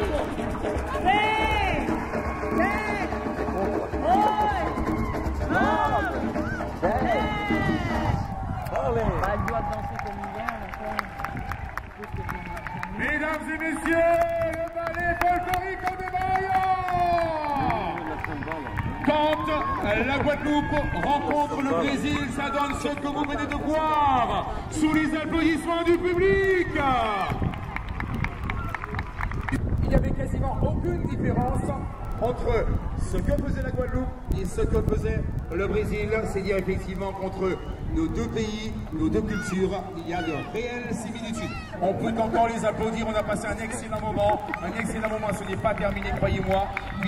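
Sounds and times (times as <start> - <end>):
crowd clapping: 0.0 - 30.4, 38.1 - 47.0.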